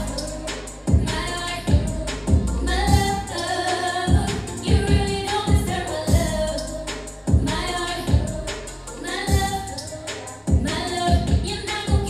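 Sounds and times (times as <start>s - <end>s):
backing track with heavy beat: 0.0s - 12.0s
woman singing into microphone: 0.0s - 12.0s.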